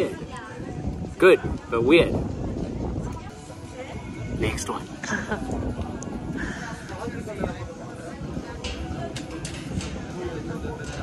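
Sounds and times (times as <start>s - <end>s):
outdoor ambience: 0.0s - 11.0s
quiet background music: 0.0s - 11.0s.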